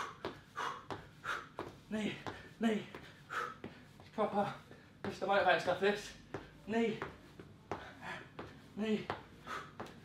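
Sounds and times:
man breathing hard: 0.0s - 5.0s, 7.7s - 10.0s.

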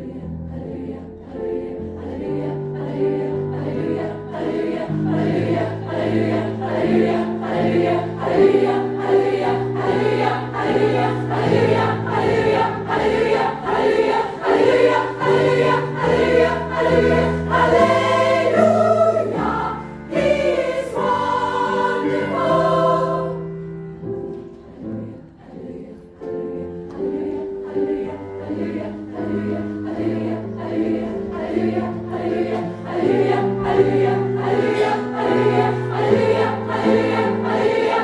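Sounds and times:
women's choir singing gospel: 0.0s - 23.6s, 24.7s - 38.0s.

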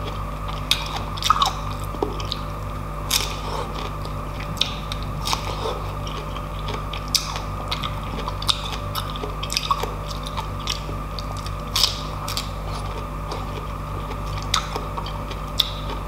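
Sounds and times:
chewing pineapple: 0.0s - 16.0s.

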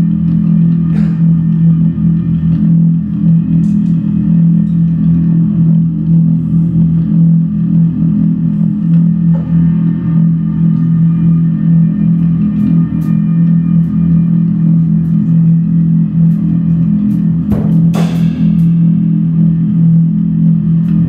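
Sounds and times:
electric bass drone: 0.0s - 21.0s.

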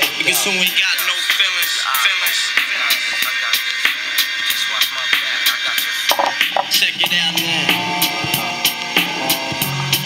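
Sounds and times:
music through small speaker: 0.0s - 10.0s.

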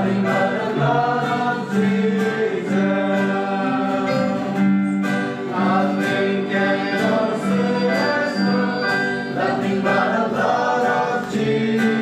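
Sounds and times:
person singing worship song: 0.0s - 12.0s
strummed acoustic guitar: 0.0s - 12.0s.

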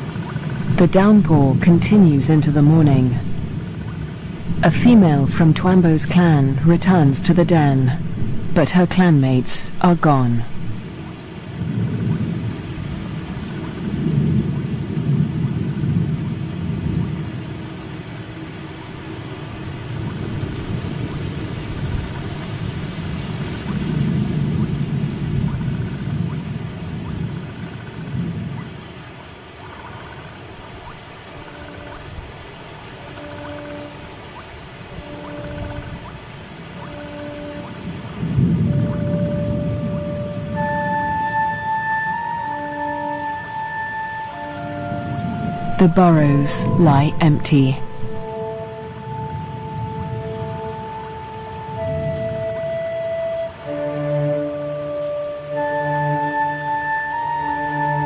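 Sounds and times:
thunder rumbling: 0.0s - 8.7s, 9.4s - 52.8s
steady rain falling: 0.0s - 58.0s.

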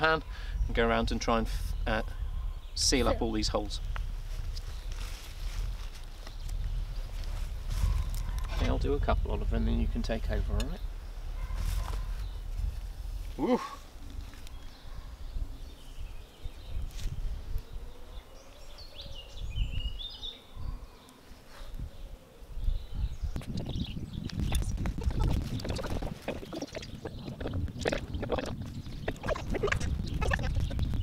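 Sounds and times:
wind on microphone: 0.0s - 20.9s, 21.5s - 31.0s
birds chirping: 0.0s - 31.0s
rustling in dry leaves: 3.2s - 8.6s, 10.8s - 15.0s.

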